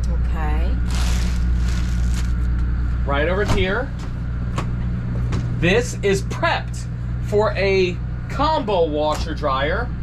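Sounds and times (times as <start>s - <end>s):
steady low hum: 0.0s - 10.0s
plastic wrapping crinkling: 0.9s - 2.5s.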